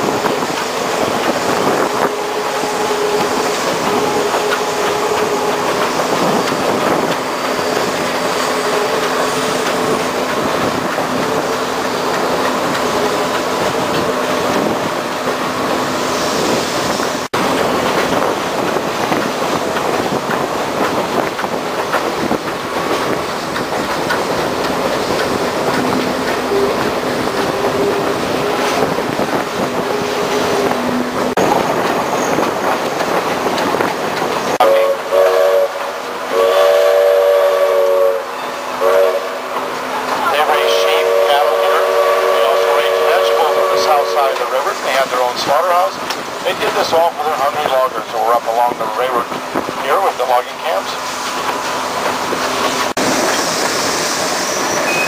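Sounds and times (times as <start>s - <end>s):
train wheels clattering and rumbling: 0.0s - 55.0s
steam locomotive whistle: 34.6s - 39.5s, 40.2s - 44.6s, 54.5s - 55.0s.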